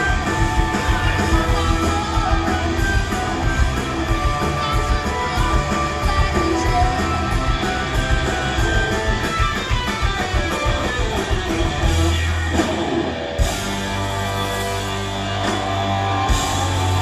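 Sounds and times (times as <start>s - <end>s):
bass guitar: 0.0s - 17.0s
drums: 0.0s - 17.0s
electric guitar: 0.0s - 17.0s.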